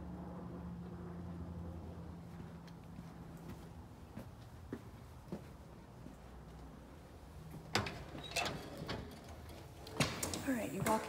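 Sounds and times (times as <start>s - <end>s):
front door clicks and knocks: 7.6s - 10.4s.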